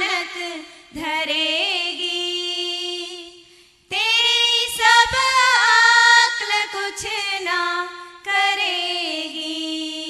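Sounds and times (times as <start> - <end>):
women singing devotional song: 0.0 - 10.0.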